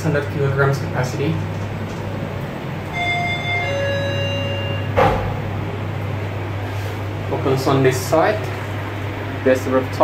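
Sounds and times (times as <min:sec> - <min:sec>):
steady low hum: 0:00.0 - 0:10.0
elevator arrival chime: 0:02.8 - 0:05.1
clunk: 0:05.0 - 0:05.4.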